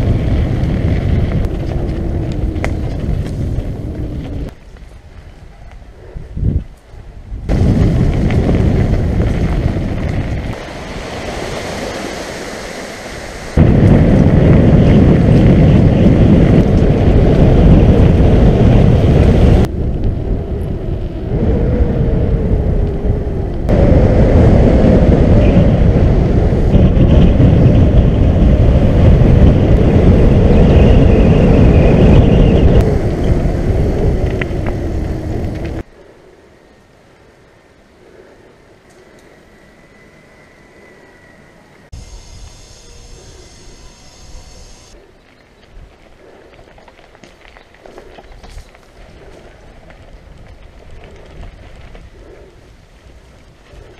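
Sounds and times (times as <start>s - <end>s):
wind buffeting microphone: 0.0s - 36.0s, 38.0s - 53.9s
bike rolling noise: 0.0s - 53.9s.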